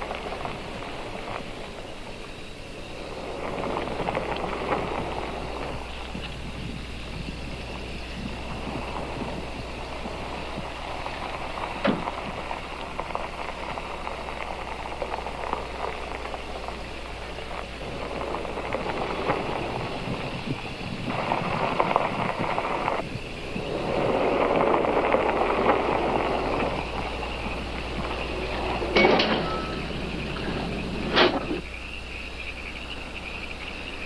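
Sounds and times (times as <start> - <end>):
car engine and tyre noise: 0.0 - 34.0.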